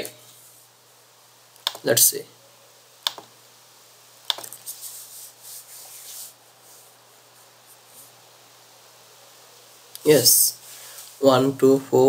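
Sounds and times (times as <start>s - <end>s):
low steady hiss: 0.0s - 12.0s
soft rubbing swishes: 4.6s - 8.2s.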